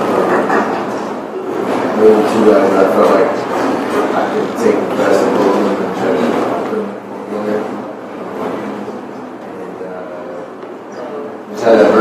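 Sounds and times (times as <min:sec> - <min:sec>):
crowded room noise: 0:00.0 - 0:12.0
man talking: 0:01.9 - 0:07.8, 0:11.5 - 0:12.0.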